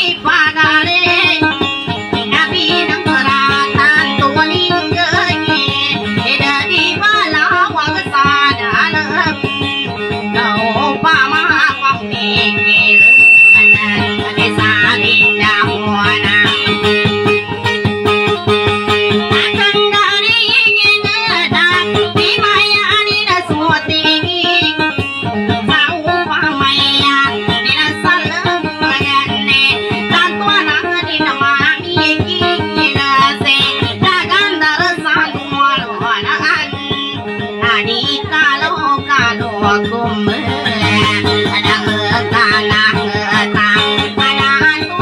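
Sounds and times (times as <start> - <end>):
amplified guitar plucked notes: 0.0 - 45.0
high steady tone: 8.8 - 31.4
person singing ornamented lines: 11.0 - 16.3.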